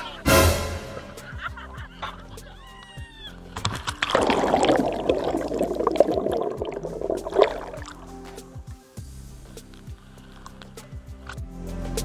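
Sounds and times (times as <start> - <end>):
background music: 0.0 - 12.0
water churning and bubbling: 3.7 - 8.2.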